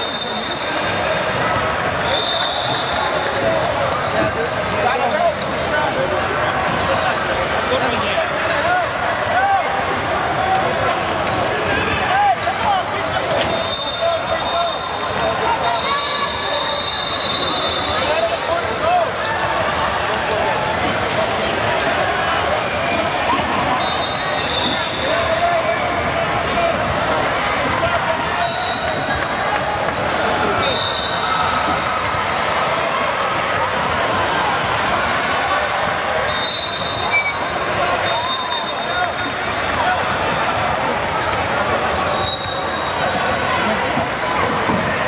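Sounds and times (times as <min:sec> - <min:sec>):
echoing voices in a gym: 0:00.0 - 0:45.0.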